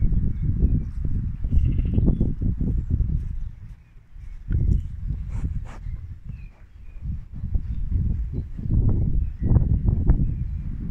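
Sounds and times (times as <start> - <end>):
sheep rubbing against leg: 2.6 - 8.4.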